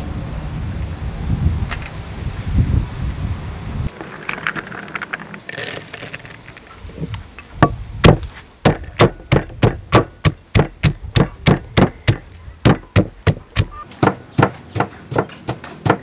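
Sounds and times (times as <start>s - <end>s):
wooden pestle pounding in mortar: 7.6s - 16.0s.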